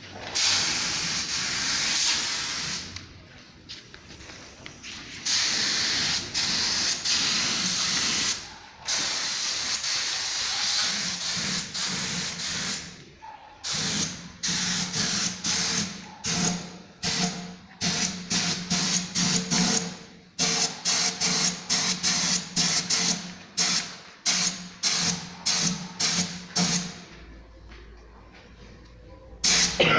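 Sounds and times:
paint spray gun hissing: 0.4s - 2.9s, 5.2s - 12.9s, 13.6s - 17.3s.

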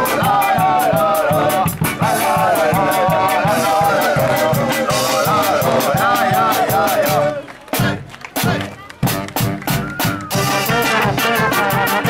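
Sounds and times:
brass band playing: 0.0s - 12.0s
drum beat: 0.0s - 12.0s.

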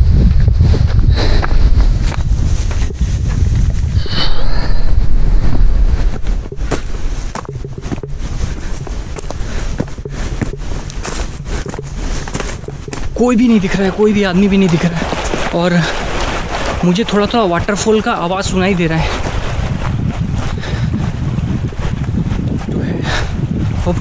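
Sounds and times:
footsteps on dirt trail: 0.0s - 24.0s
wind buffeting microphone: 0.0s - 24.0s.

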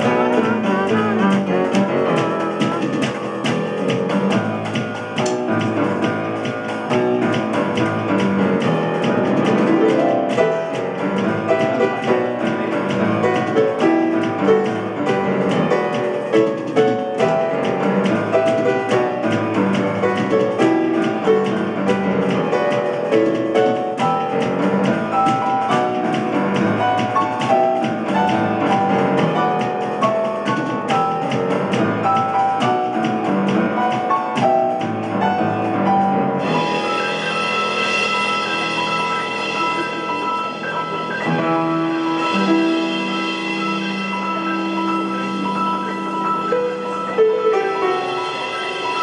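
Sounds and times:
grand piano playing: 0.0s - 49.0s.

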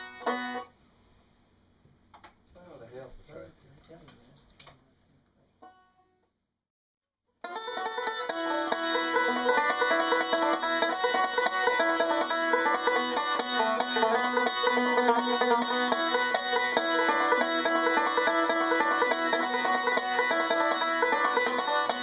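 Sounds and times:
banjo picking: 0.0s - 0.7s, 7.4s - 22.0s.

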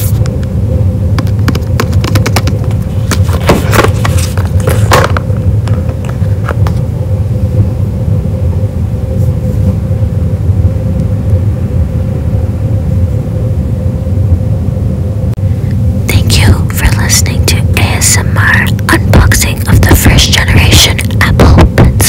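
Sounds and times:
faint hum: 0.0s - 22.0s
low rumble: 0.0s - 22.0s
person whispering: 16.1s - 22.0s.

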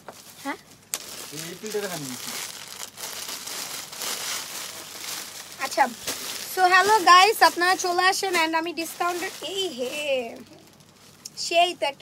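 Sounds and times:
crinkling rustle of fabric and wrapping: 0.0s - 12.0s.

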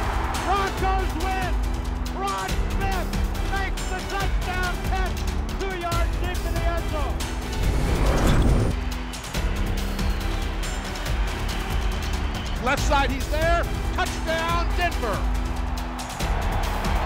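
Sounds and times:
whoosh: 7.4s - 8.8s.

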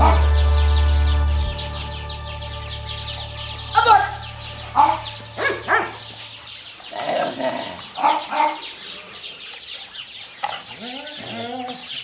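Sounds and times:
faint birdsong: 0.0s - 12.0s
puppy barking: 4.8s - 6.2s, 8.0s - 8.7s.

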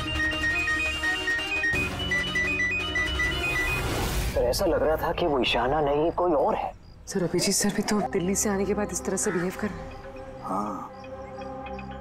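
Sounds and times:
phone ringtone high beeping melody: 0.0s - 4.2s
dramatic background music: 0.0s - 4.4s, 7.1s - 12.0s.

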